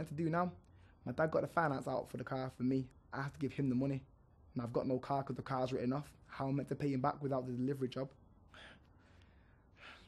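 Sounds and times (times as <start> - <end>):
man breathing: 0.6 - 1.0, 8.4 - 10.0.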